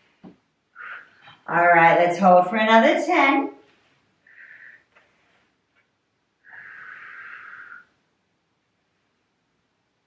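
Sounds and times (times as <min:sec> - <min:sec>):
long breath out: 0:06.5 - 0:08.0.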